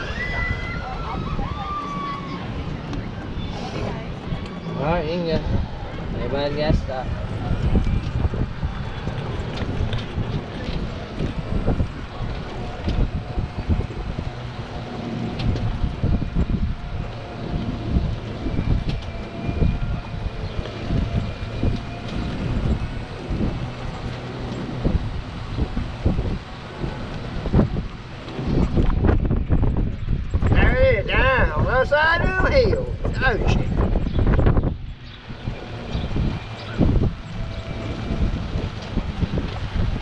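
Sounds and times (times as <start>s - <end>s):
golf cart running: 0.0s - 40.0s
wind buffeting microphone: 0.0s - 40.0s.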